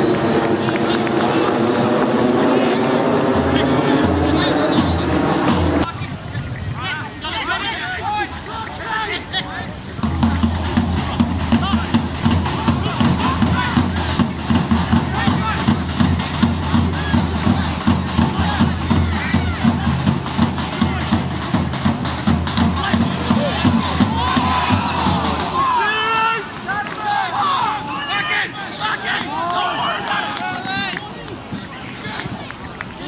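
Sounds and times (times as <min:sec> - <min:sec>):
crowd voices: 0:00.0 - 0:33.0
players shouting: 0:00.0 - 0:33.0.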